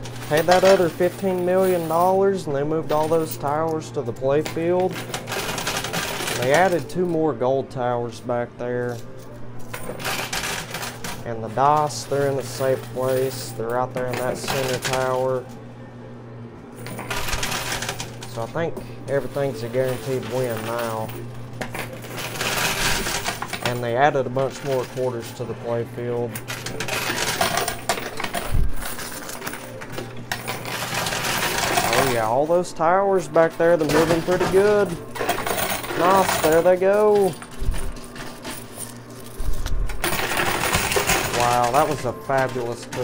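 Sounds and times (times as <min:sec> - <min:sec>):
coins clinking and sliding: 0:00.0 - 0:07.2, 0:08.8 - 0:15.5, 0:16.8 - 0:32.6, 0:33.2 - 0:43.0
coin machine humming: 0:00.0 - 0:43.0.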